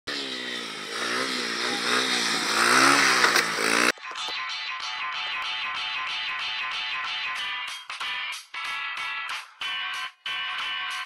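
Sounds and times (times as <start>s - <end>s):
dirt bike engine revving: 0.1s - 3.9s
music with steady beat: 3.9s - 11.0s.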